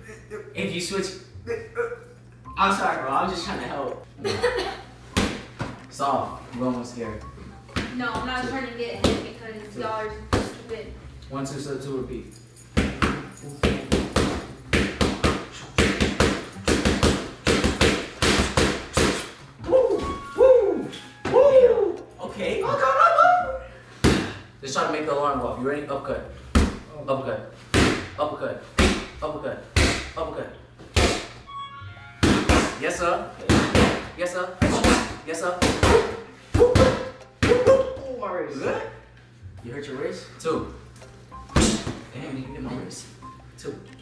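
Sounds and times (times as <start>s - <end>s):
boxing gloves striking focus mitts: 12.7s - 19.3s, 27.7s - 28.1s, 29.8s - 30.2s.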